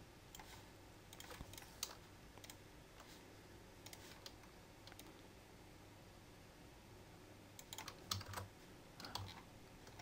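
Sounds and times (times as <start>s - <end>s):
faint computer keyboard keystrokes: 0.3s - 3.1s, 3.8s - 5.2s, 7.6s - 10.0s.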